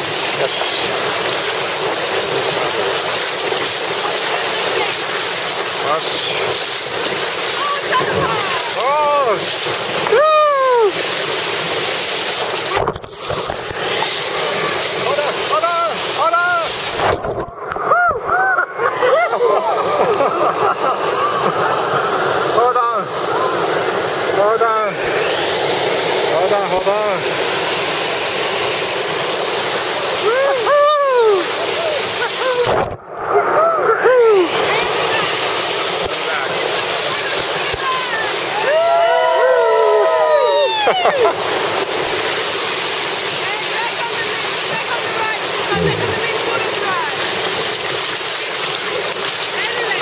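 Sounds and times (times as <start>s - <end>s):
river rapids rushing and splashing: 0.0s - 17.8s, 19.4s - 50.0s
people whooping and yelling: 10.0s - 11.1s, 17.8s - 21.5s, 30.2s - 32.7s, 38.0s - 41.4s.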